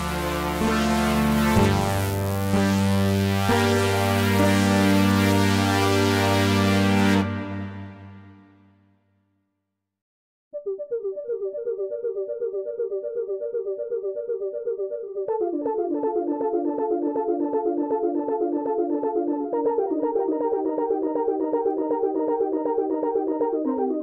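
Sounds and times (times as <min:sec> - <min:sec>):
repeating synth notes: 0:00.0 - 0:08.4.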